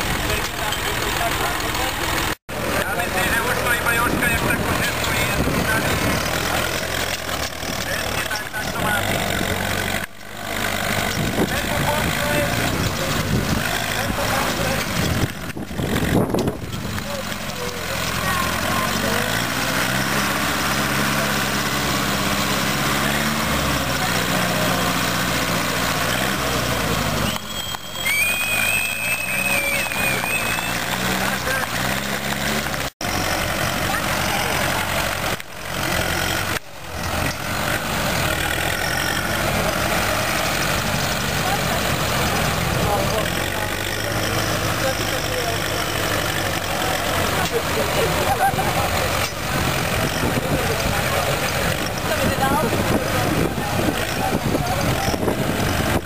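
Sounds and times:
crowd chatter: 0:00.0 - 0:56.0
tractor engines under load: 0:00.0 - 0:56.0.

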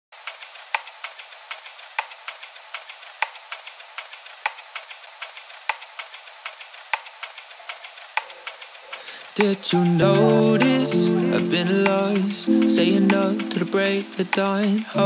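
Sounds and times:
vinyl record crackle: 0:00.2 - 0:15.0.

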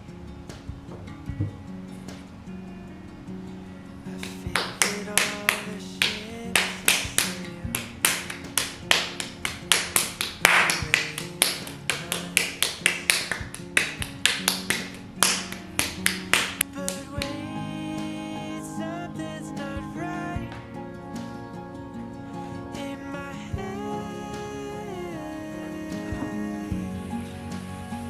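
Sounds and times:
guitar music: 0:00.0 - 0:28.0.

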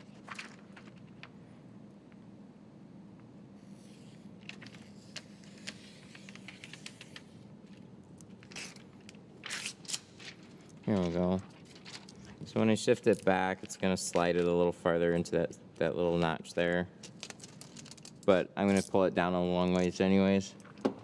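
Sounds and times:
film scraping and crinkling: 0:00.0 - 0:01.3, 0:04.4 - 0:12.6, 0:16.1 - 0:18.3
rustling: 0:09.4 - 0:12.4.

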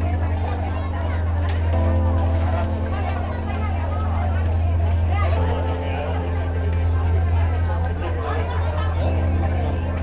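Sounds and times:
boat engine drone: 0:00.0 - 0:10.0
faint music: 0:00.0 - 0:10.0
passengers chattering: 0:00.0 - 0:10.0.

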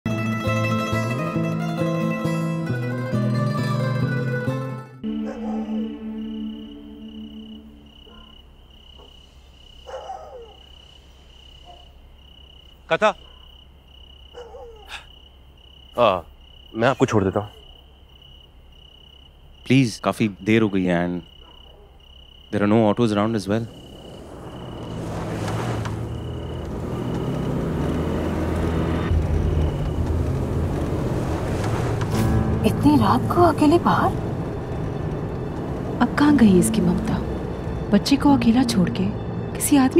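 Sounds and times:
crickets chirping: 0:05.0 - 0:39.9
car engine running: 0:23.5 - 0:39.9.

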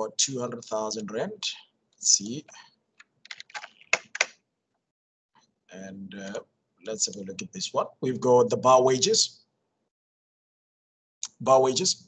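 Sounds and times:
typing on computer keyboard: 0:03.2 - 0:04.4.

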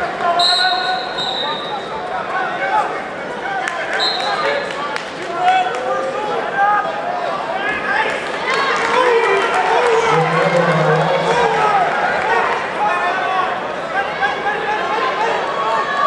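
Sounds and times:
high-pitched tone: 0:10.1 - 0:12.0.

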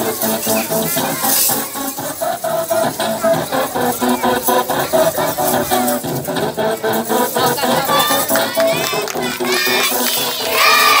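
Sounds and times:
children shouting: 0:00.0 - 0:11.0
song music: 0:00.0 - 0:11.0.

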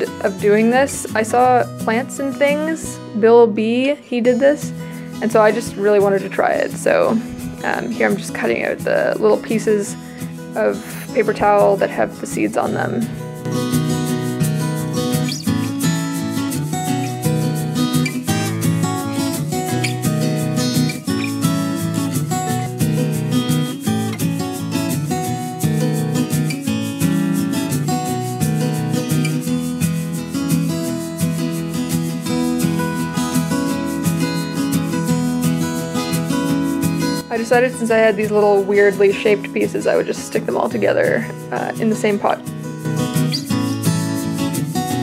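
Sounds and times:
acoustic guitar music: 0:00.0 - 0:45.0.

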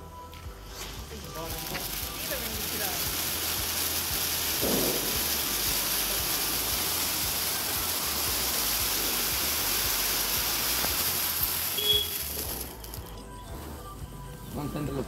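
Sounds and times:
firework crack: 0:00.0 - 0:14.0
fountain fireworks hissing: 0:00.0 - 0:14.1.

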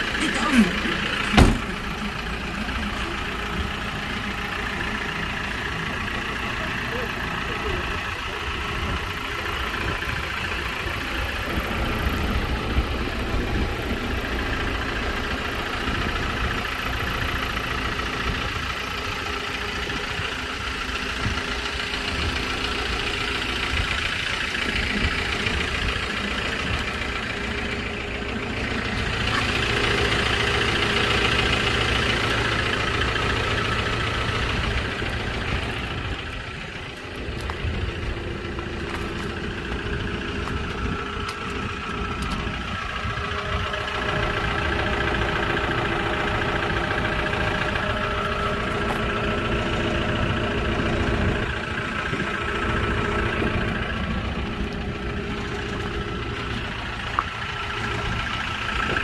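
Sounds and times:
diesel truck engine idling: 0:00.0 - 0:59.0.

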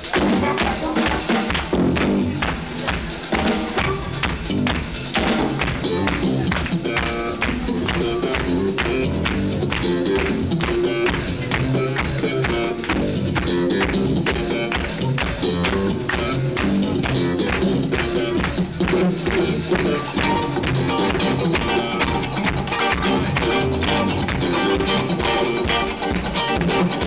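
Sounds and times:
live band playing blues-funk: 0:00.0 - 0:27.0
percussion beat: 0:00.0 - 0:27.0.

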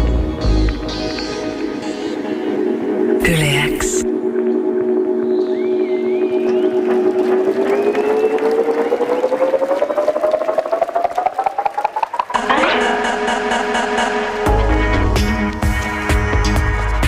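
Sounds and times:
electronic house music: 0:00.0 - 0:17.0
rising synth tone: 0:04.0 - 0:15.2.

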